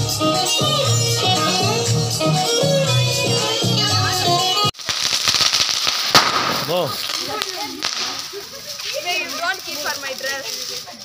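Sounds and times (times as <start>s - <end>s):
sparklers fizzing and crackling: 4.7s - 11.0s
sharp pop: 4.9s - 8.2s.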